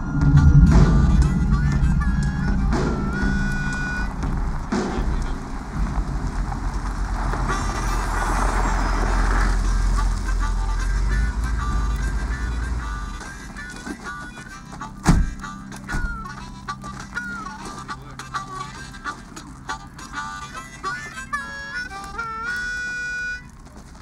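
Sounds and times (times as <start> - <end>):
sharp thump: 0.0 - 7.6, 15.1 - 16.1
harmonica slow melody: 0.0 - 24.0
vehicle engine rumble: 0.0 - 24.0.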